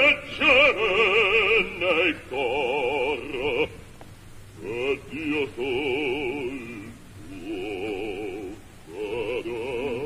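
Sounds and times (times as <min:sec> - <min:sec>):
operatic bass voice singing: 0:00.0 - 0:03.8, 0:04.6 - 0:10.0.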